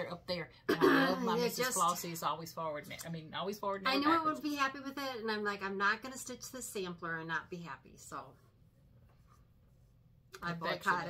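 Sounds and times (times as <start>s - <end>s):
woman speaking: 0.0s - 8.4s, 10.4s - 11.0s.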